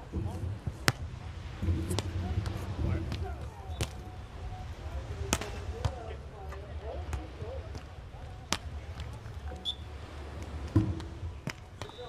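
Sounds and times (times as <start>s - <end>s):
voices in background: 0.0s - 12.0s
hand slapping volleyball: 8.5s - 9.2s, 10.4s - 12.0s.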